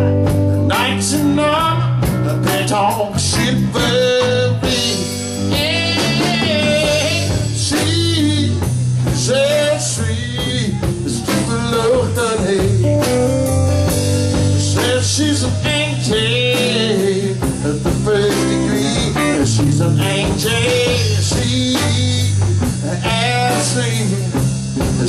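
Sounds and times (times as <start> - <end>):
live rock band playing: 0.0 - 25.0.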